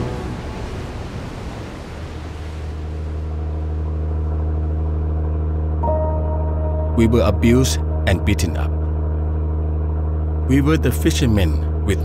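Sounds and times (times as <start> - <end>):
wash of noise: 0.0 - 10.4
boat engine droning: 0.0 - 12.0.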